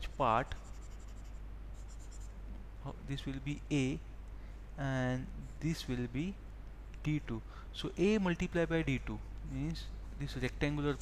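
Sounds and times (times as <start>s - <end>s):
stylus scratching on tablet screen: 0.0s - 2.4s
low electrical hum: 0.0s - 11.0s.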